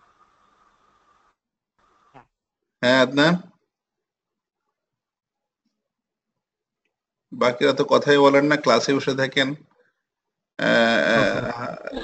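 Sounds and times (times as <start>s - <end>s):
man making drawn-out vocal sound: 10.6s - 12.0s.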